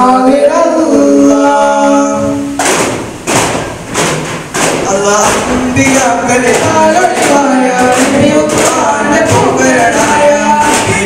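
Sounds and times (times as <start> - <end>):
people singing: 0.0 - 2.6, 4.8 - 11.0
frame drums struck in unison: 2.0 - 11.0.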